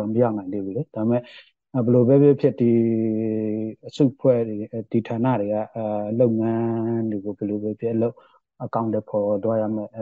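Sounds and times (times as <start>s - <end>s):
man speaking on radio news: 0.0s - 10.0s.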